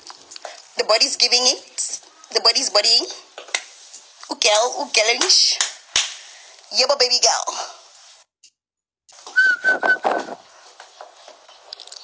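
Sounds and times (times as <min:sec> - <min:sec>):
short whistle-like notes: 0:09.3 - 0:10.4.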